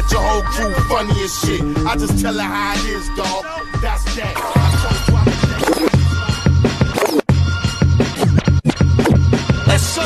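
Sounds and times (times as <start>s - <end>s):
hip hop beat with heavy bass: 0.0s - 10.0s
turntable scratches: 4.3s - 7.3s, 8.0s - 9.9s.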